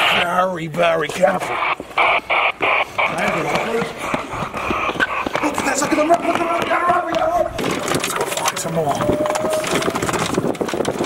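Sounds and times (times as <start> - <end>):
golf cart rattling over rough ground: 5.0 - 11.0.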